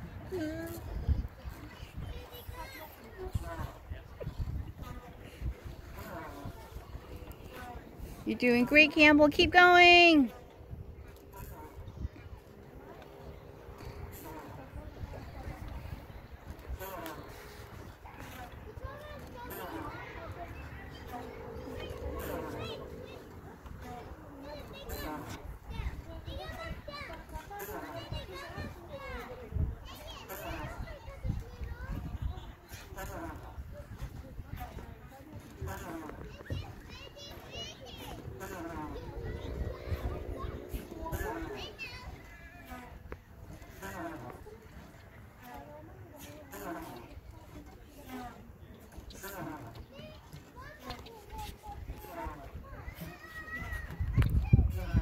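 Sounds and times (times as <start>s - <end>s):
children calling and chattering: 0.0s - 55.0s.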